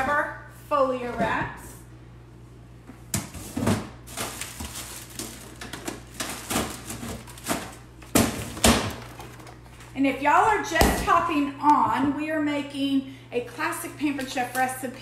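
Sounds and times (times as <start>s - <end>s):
kitchen items knocking and rustling: 3.0s - 11.2s.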